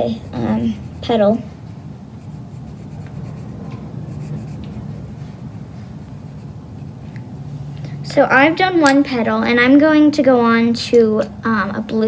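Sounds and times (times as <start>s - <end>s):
colored pencil scratching on paper: 0.0s - 7.1s
low steady hum: 0.0s - 12.0s.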